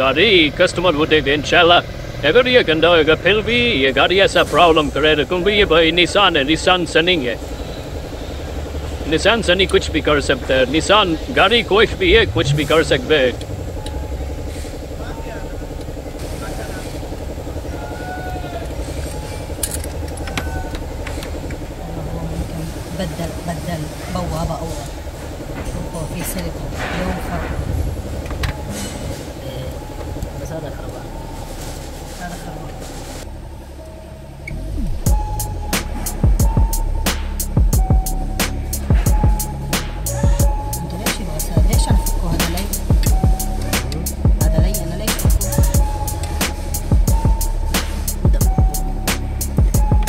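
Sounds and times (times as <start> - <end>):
man talking: 0.0 - 7.4, 9.0 - 13.7, 43.6 - 45.8
car engine idling: 0.0 - 50.0.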